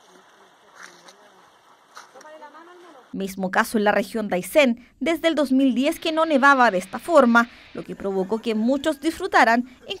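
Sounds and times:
light rustle: 0:00.0 - 0:03.0.

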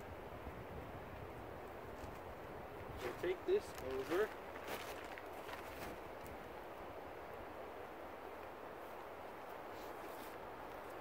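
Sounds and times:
steady background hiss: 0:00.0 - 0:11.0
footsteps on forest floor: 0:03.0 - 0:06.0
plastic tarp rustling: 0:03.1 - 0:06.0.

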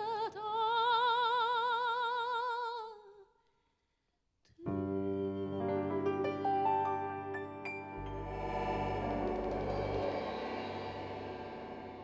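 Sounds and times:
piano and accordion chord: 0:04.9 - 0:12.0.

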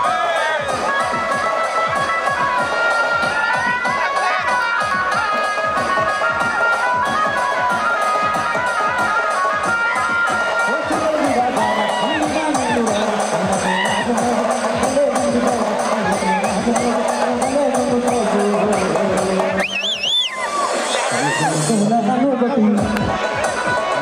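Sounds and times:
crowd cheering: 0:00.0 - 0:24.0
rapid drumbeat: 0:00.0 - 0:24.0
wind instrument melody: 0:00.0 - 0:24.0.

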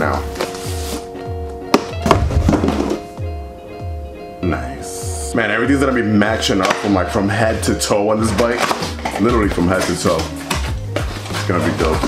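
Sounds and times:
cardboard packaging handled: 0:00.0 - 0:03.1, 0:08.2 - 0:12.0
background music with steady beat: 0:00.0 - 0:12.0.

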